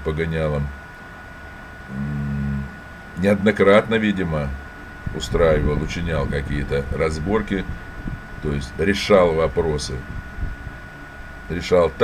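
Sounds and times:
man humming in hesitation: 0:01.9 - 0:02.8.

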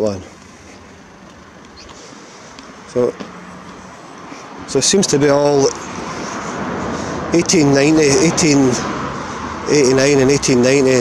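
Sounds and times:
man speaking: 0:00.0 - 0:00.4, 0:02.9 - 0:03.2, 0:04.7 - 0:05.8, 0:07.3 - 0:08.9, 0:09.7 - 0:11.0.

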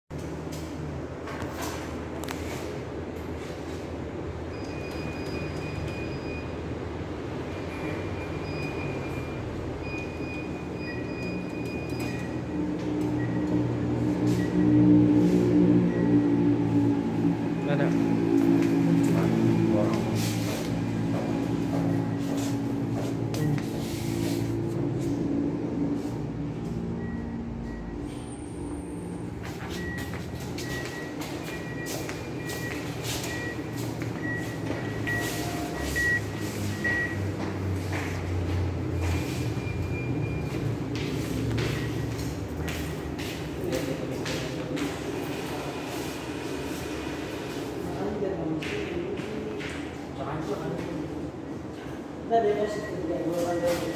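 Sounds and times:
high electronic beeps: 0:07.7 - 0:24.7, 0:26.8 - 0:37.4, 0:38.8 - 0:43.2.

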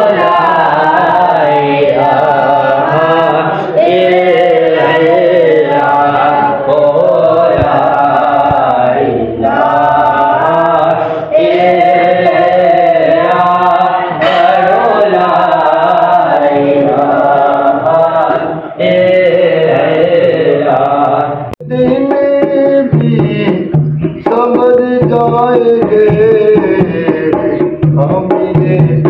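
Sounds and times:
voices chanting a prayer: 0:00.0 - 0:29.0.

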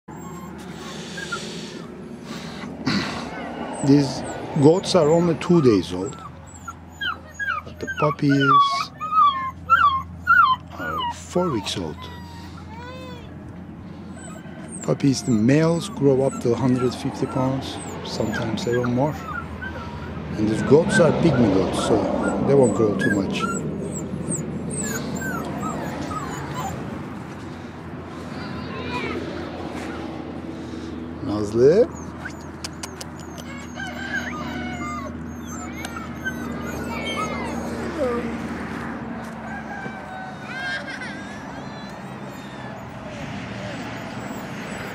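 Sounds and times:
puppy whining: 0:00.0 - 0:44.9
birds chirping and clucking: 0:00.1 - 0:44.9.

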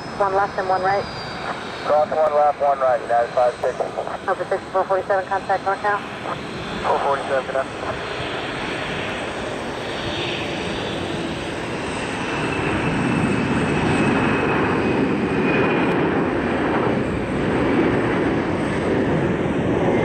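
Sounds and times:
jet engine noise at takeoff: 0:00.0 - 0:20.0.

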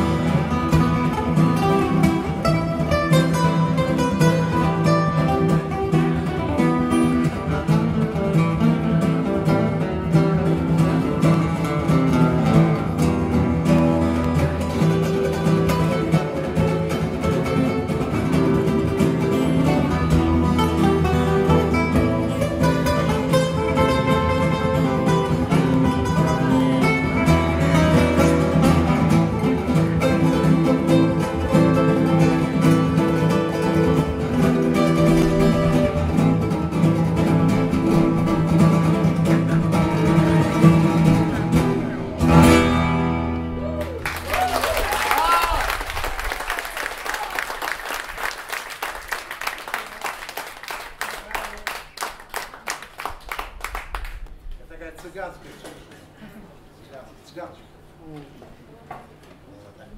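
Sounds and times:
acoustic guitar duet: 0:00.0 - 0:46.2.

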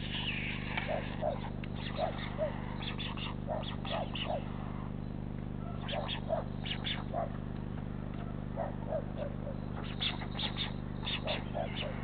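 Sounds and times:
short animal calls: 0:00.0 - 0:05.0, 0:05.6 - 0:07.3, 0:08.2 - 0:12.0
low electrical hum: 0:00.0 - 0:12.0.

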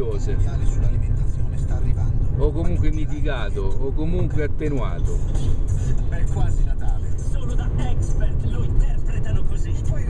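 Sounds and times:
car driving rumble: 0:00.0 - 0:10.0
faint car radio advertisement: 0:00.0 - 0:10.0.

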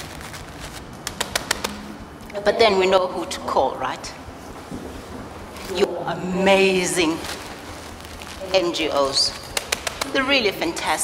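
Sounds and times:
plastic bags crackling: 0:00.0 - 0:02.0, 0:05.4 - 0:11.0.

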